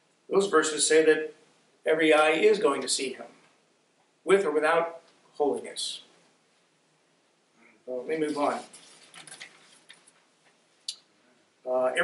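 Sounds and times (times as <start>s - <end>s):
paper rustling: 8.3s - 10.6s.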